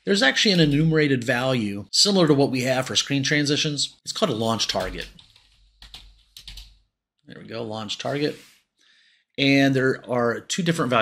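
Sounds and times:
computer keyboard typing: 0:04.6 - 0:06.8.

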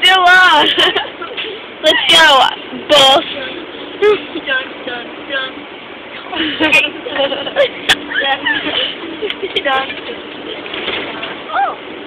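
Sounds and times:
bus running noise: 0:00.0 - 0:12.0.

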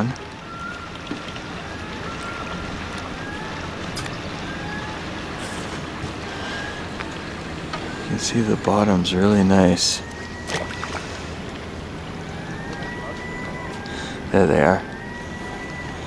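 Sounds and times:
low hum: 0:00.0 - 0:16.0
water around a boat: 0:00.0 - 0:16.0
wind: 0:00.0 - 0:16.0.

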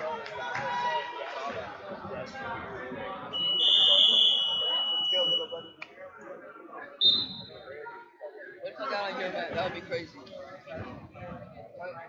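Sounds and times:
gym chatter: 0:00.0 - 0:12.0.

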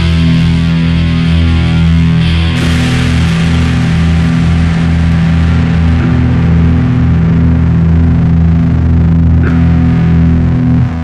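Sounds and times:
distorted heavy metal guitars and bass: 0:00.0 - 0:11.0.

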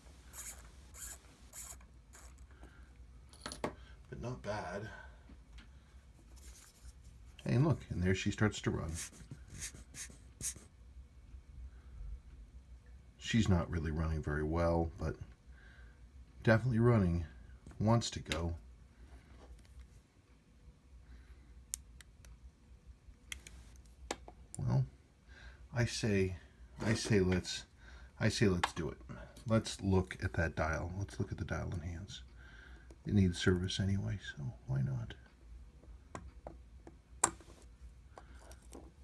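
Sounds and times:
low room hum: 0:00.0 - 0:39.0.

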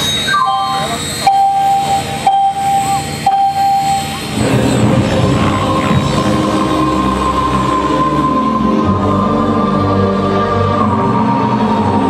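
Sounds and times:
helicopter rotor running: 0:00.0 - 0:12.0
long musical tones: 0:00.0 - 0:12.0.

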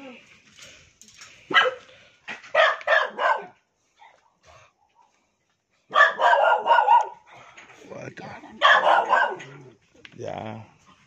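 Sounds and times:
dog barking: 0:01.5 - 0:01.9, 0:02.5 - 0:03.6, 0:05.9 - 0:07.3, 0:08.6 - 0:09.6.

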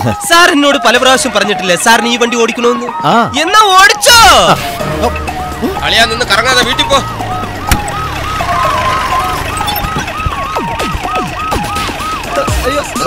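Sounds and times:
siren yelping: 0:01.0 - 0:13.0.

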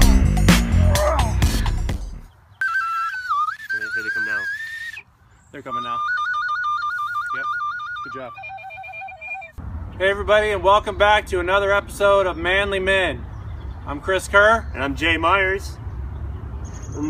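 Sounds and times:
tin whistle tune: 0:02.6 - 0:05.0, 0:05.7 - 0:09.6.

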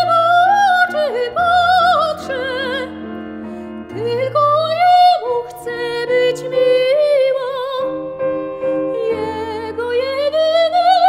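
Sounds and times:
soprano singing with vibrato: 0:00.0 - 0:03.0, 0:03.9 - 0:11.0
grand piano: 0:00.0 - 0:11.0.

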